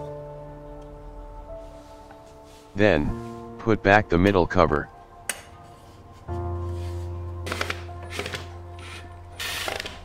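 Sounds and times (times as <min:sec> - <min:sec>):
cordless drill motor running: 0:08.9 - 0:10.0.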